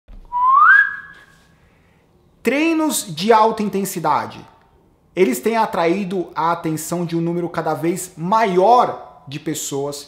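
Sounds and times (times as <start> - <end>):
rising whistled note: 0.2 - 1.4.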